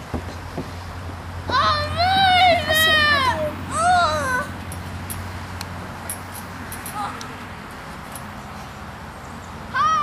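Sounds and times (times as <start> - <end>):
high-pitched wavering cry: 1.7 - 4.6.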